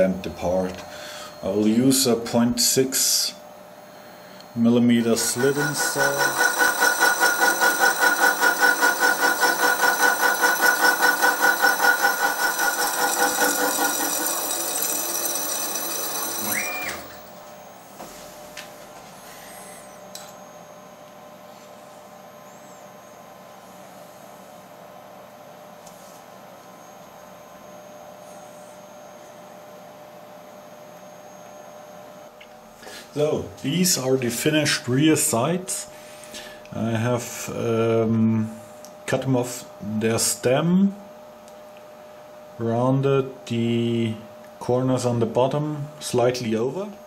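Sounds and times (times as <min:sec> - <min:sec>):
faint steady hum: 0:00.0 - 0:09.6
saw cutting metal ringing: 0:04.8 - 0:17.4.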